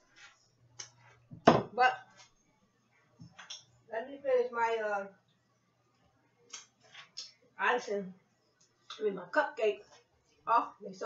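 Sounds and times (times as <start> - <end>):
kitchenware knocking on counter: 1.3 - 1.8.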